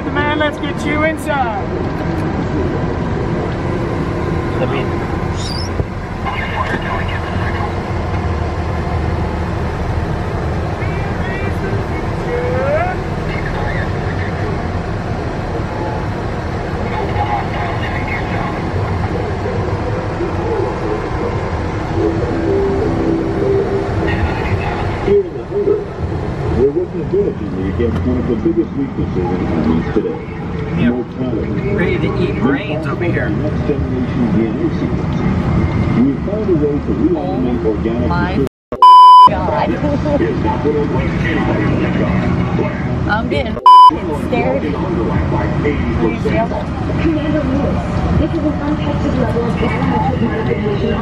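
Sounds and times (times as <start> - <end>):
faint indistinct voices: 39.2 - 51.0.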